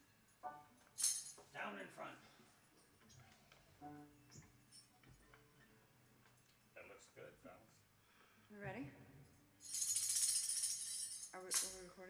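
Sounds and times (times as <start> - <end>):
tambourine jingling: 0.0 - 1.5, 9.6 - 12.0.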